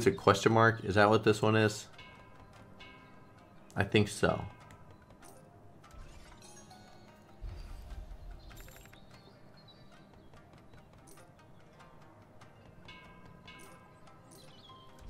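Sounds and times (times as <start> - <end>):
faint background music: 0.0 - 15.0
slot reel sound effects: 5.9 - 7.0.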